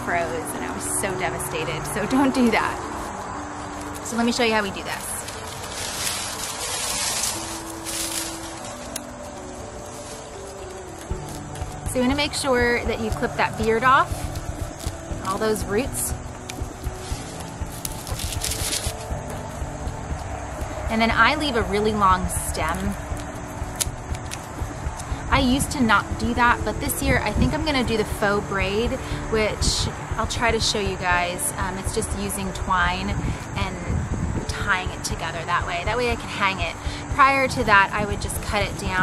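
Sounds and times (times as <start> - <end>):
soft background music: 0.0 - 39.0
wind rumbling on microphone: 0.0 - 39.0
dry stalks rustling and crackling: 0.1 - 29.3.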